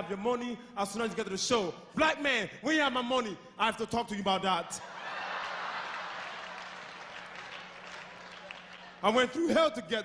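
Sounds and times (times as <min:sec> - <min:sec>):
audience applauding: 0:05.0 - 0:09.1.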